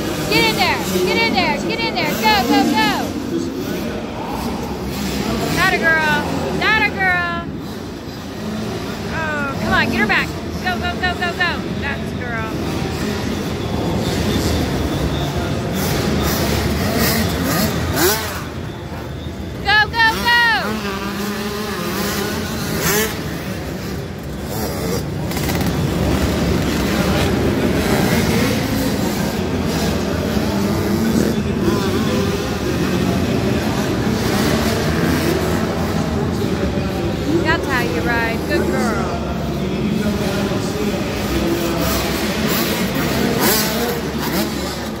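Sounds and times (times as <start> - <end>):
dirt bike engines revving: 0.0 - 45.0.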